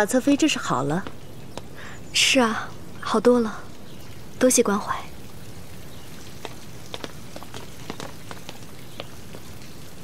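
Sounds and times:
soft background hiss: 0.0s - 10.0s.

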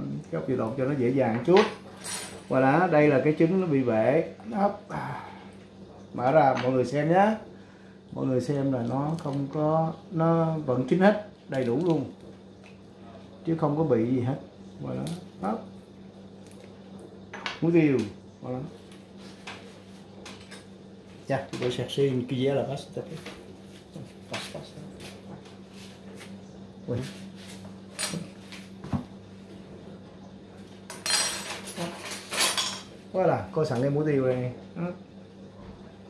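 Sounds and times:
steady low hum: 0.0s - 36.0s
tableware clinks: 30.9s - 32.9s.

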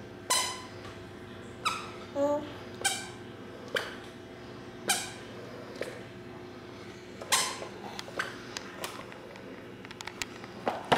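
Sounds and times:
squeaker shoes squeaking: 0.3s - 0.8s, 1.6s - 2.0s, 2.8s - 3.2s.

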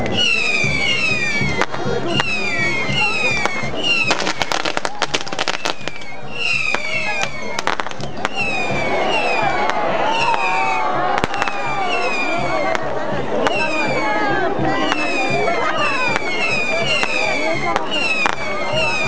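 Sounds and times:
firework falling whistle: 0.0s - 19.0s
rapid crackling firecrackers: 0.0s - 19.0s.

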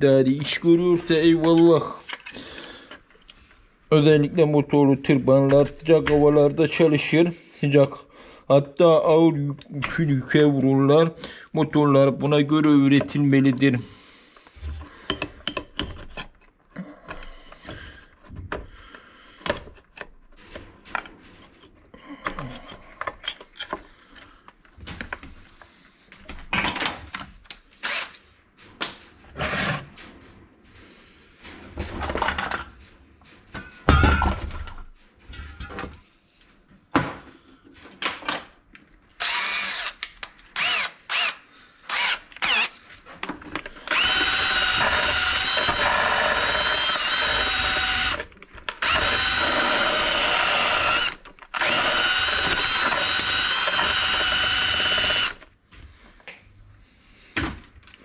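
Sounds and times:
tools clicking and knocking: 14.8s - 18.7s, 19.4s - 24.3s
cordless drill whining: 27.8s - 28.2s, 39.2s - 42.8s, 43.7s - 55.5s.

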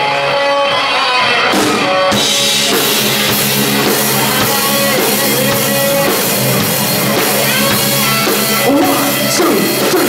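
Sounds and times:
electric guitar playing chords: 0.0s - 10.0s
drum kit hit: 1.4s - 10.0s.

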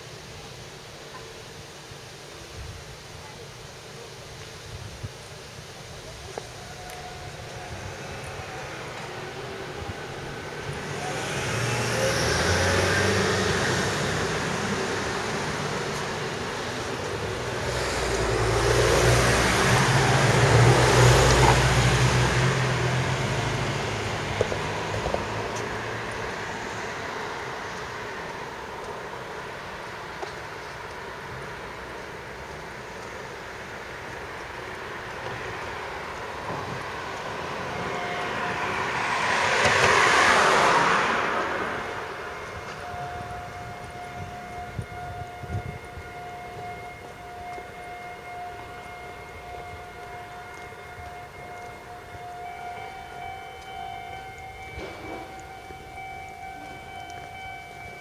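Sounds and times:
vehicles passing by: 5.5s - 58.0s
vehicle passing by: 10.4s - 28.0s, 35.8s - 42.7s.

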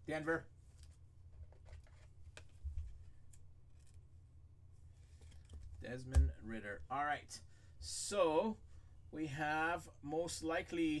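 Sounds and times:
low steady hum: 0.0s - 11.0s
card and plastic sleeve rustling: 0.6s - 4.1s, 4.9s - 5.8s.

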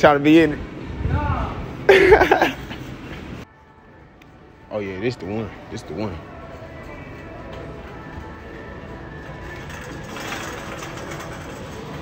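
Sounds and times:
faint background music: 3.4s - 12.0s
shopping cart wheels rattling: 9.2s - 12.0s.

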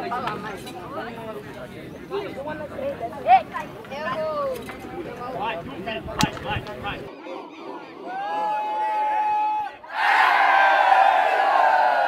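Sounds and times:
boys' voices and shouts: 2.1s - 10.4s.

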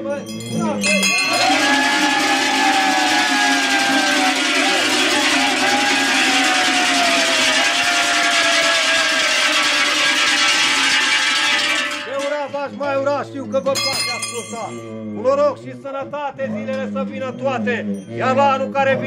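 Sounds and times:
cowbells clanging: 0.0s - 15.7s, 16.7s - 19.0s
long falling tone: 1.2s - 12.6s.

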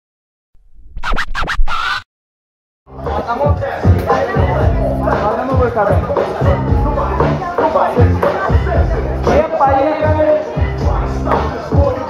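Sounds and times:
record scratches: 0.6s - 2.1s.

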